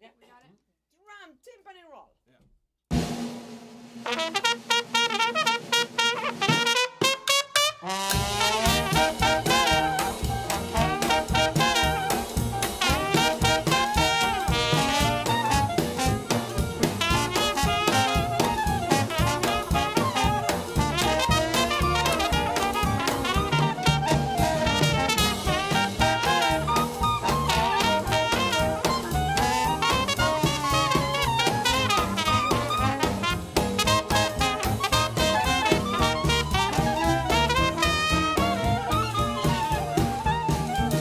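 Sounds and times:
drum kit: 2.9 - 41.0
trumpet: 3.0 - 41.0
trombone: 4.0 - 41.0
clarinet: 4.1 - 41.0
upright bass: 8.1 - 41.0.

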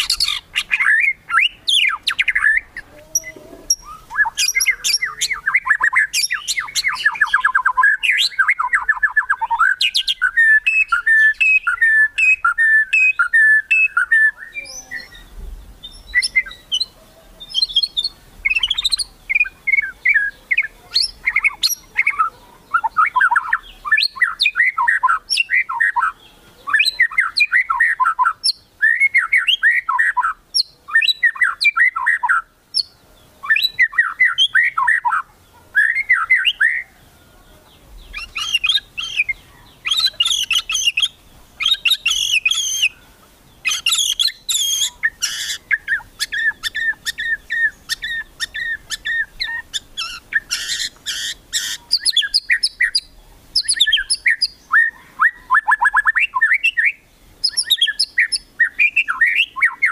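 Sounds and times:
bird rattling song: 0.0 - 14.2, 38.1 - 43.0, 43.6 - 54.6, 57.4 - 59.9
bird whistled phrases: 0.0 - 35.2, 35.8 - 36.9, 38.1 - 43.0, 43.6 - 59.9.

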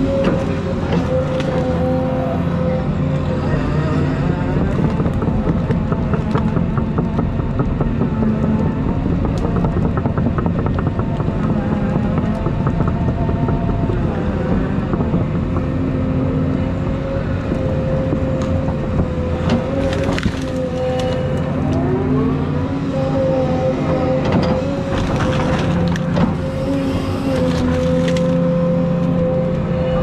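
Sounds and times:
diesel engine running: 0.0 - 30.0
hydraulic whine: 0.0 - 30.0.

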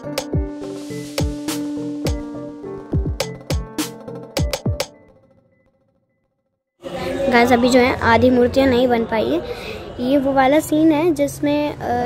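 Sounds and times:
background music: 0.0 - 5.4
room ambience: 0.0 - 6.1.

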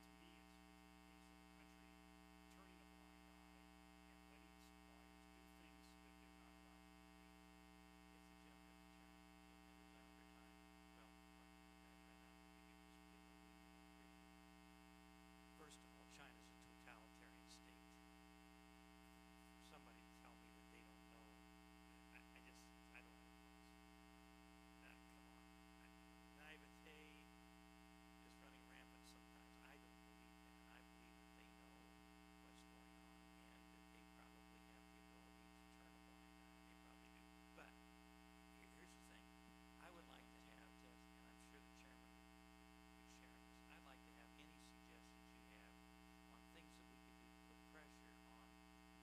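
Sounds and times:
electrical mains hum: 0.0 - 49.0.

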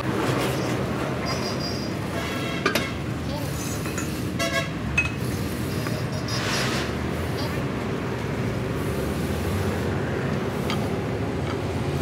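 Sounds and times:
road traffic noise: 0.0 - 12.0
vehicle horn toot: 4.4 - 4.8.

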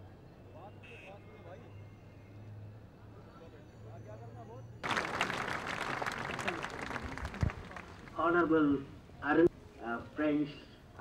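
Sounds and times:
faint voices outdoors: 0.0 - 11.0
audience applauding: 4.8 - 8.2.

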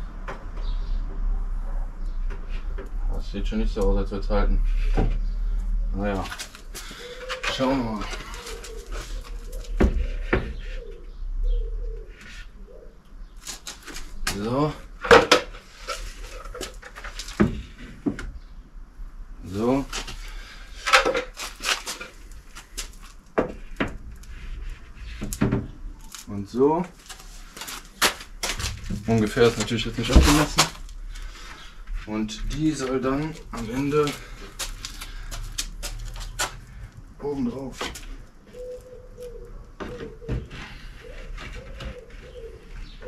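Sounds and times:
wood creaking: 4.6 - 11.1, 13.4 - 18.4, 19.4 - 43.0.

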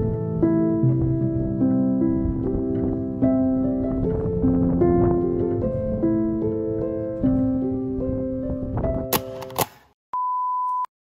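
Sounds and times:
piano music: 0.0 - 9.4.

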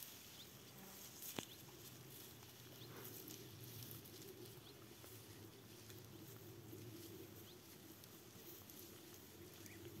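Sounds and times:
faint ticks and crackles: 0.0 - 10.0.

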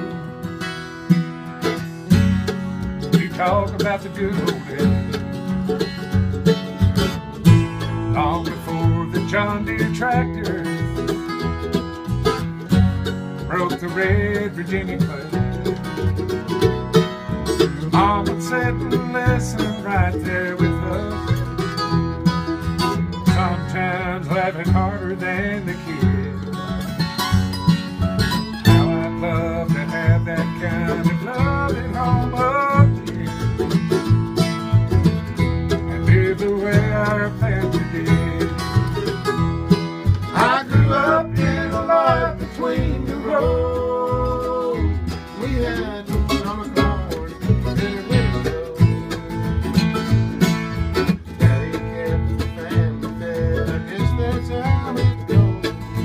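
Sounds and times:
picked melody line: 0.0 - 56.0
strummed acoustic guitar: 0.0 - 56.0
upright bass plucked: 0.0 - 56.0.

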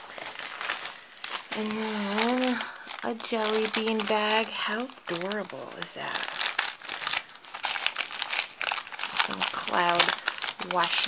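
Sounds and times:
gift bag crinkling: 0.0 - 11.0
tape peeling: 5.1 - 11.0.

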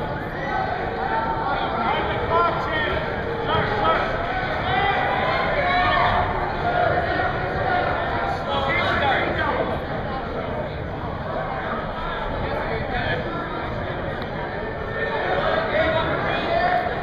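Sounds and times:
voices talking and calling out: 0.0 - 17.0.

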